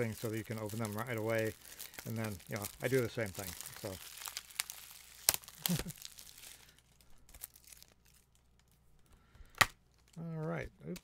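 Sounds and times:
plastic shrink wrap crinkling: 0.0 - 11.0.

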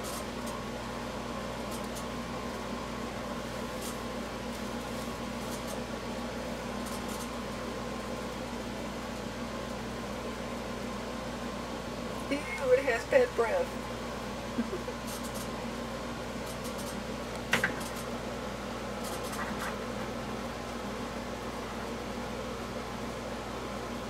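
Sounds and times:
ventilation hum: 0.0 - 24.0.

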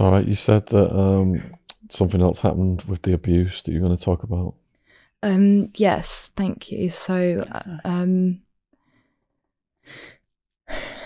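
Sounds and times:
woman breathing: 4.8 - 5.2, 8.8 - 11.0.

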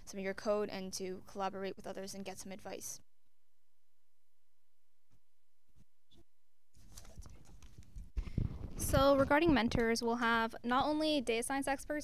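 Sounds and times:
woman speaking: 0.0 - 3.0, 8.8 - 12.0
microphone handling noise: 5.8 - 10.0.

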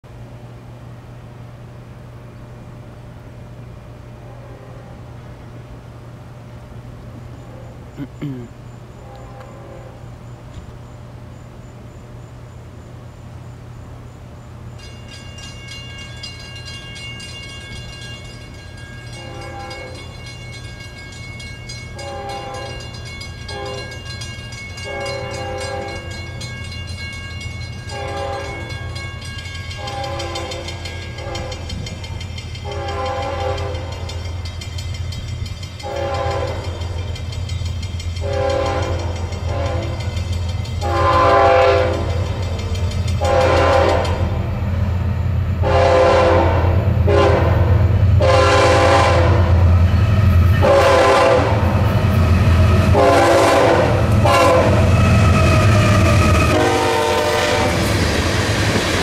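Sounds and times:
diesel locomotive rumble: 0.1 - 59.0
train air horn blasts: 4.2 - 5.2, 9.0 - 10.2, 19.2 - 20.0, 22.0 - 22.9, 23.5 - 24.1, 24.8 - 26.2, 27.9 - 28.8, 29.7 - 31.9, 32.6 - 34.2, 35.8 - 36.9, 38.2 - 40.2, 40.8 - 42.3, 43.2 - 44.4, 45.6 - 51.8, 52.6 - 57.9
crossing bell ringing: 14.5 - 46.2.

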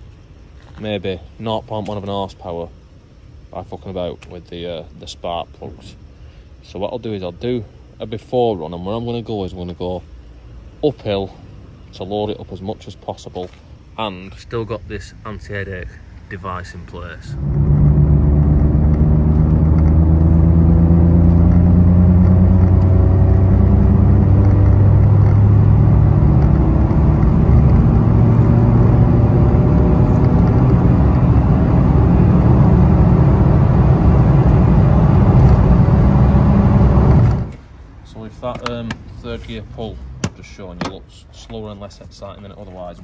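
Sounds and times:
car engine accelerating: 17.2 - 37.6.

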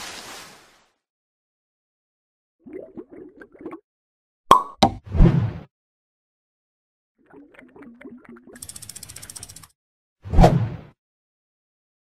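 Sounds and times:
bubbly pops: 2.6 - 3.8
rapid ratchet-like clicks: 8.6 - 9.7.

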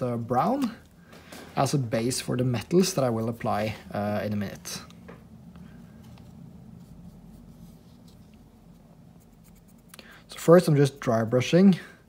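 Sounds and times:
low steady hum: 0.0 - 12.0
paintbrush scratching paper towel: 6.6 - 10.4.

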